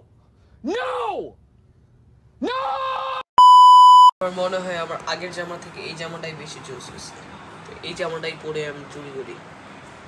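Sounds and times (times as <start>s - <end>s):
man shouting: 0.6s - 1.4s, 2.4s - 3.2s
electronic test-tone beep: 3.4s - 4.1s.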